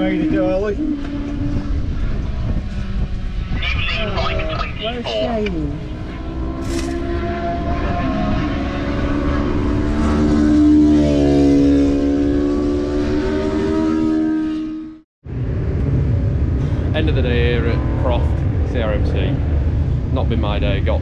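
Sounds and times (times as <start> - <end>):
racing motorcycle engines: 0.0 - 21.0.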